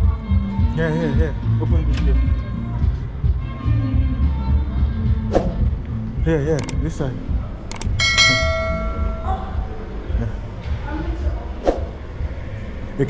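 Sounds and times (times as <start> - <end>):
bell-like ding: 7.7 - 9.7.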